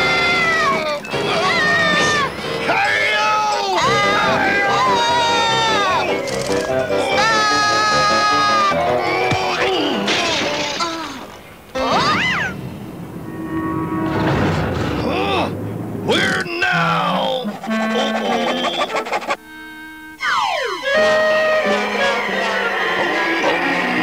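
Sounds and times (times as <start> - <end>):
wordless cartoon voices: 0.0 - 6.2, 6.8 - 12.6, 15.0 - 19.4, 20.8 - 24.0
cartoon music: 0.0 - 10.1, 16.7 - 24.0
comic sound effects: 11.8 - 19.4, 20.2 - 24.0
pitch glides: 11.8 - 24.0.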